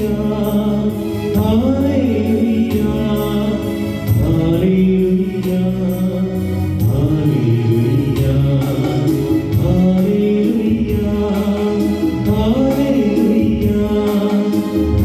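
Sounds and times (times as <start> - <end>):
keyboard accompaniment with steady beat: 0.0 - 15.0
person singing: 0.0 - 15.0.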